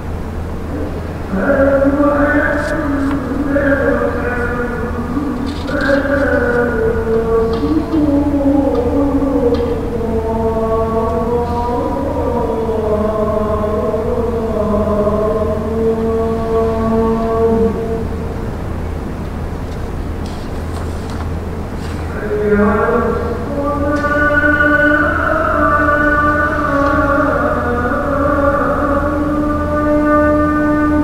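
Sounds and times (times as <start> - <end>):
low electrical hum: 0.0 - 31.0
man chanting: 0.7 - 18.2, 21.9 - 31.0.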